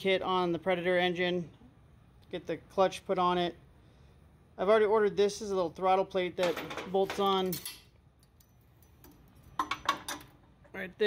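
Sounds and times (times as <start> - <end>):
faint metal clicks and taps: 8.2 - 10.3.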